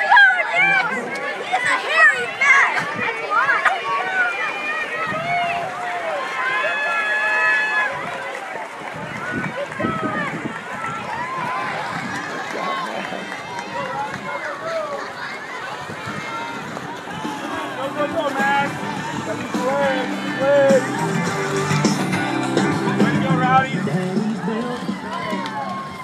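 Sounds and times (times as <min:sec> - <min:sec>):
crowd shouting and cheering: 0:00.0 - 0:26.0
swimmers splashing: 0:00.0 - 0:26.0.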